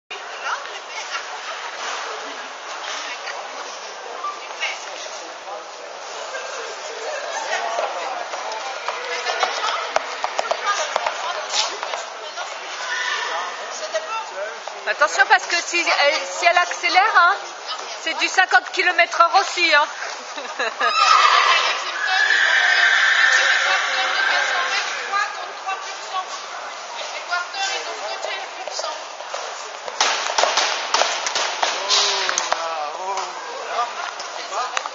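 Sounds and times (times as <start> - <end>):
people chattering in a hall: 0.1 - 34.9.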